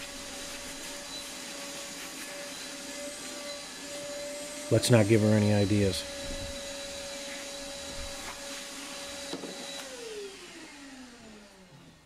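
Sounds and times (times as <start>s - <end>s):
shop vacuum whining: 0.0s - 12.0s.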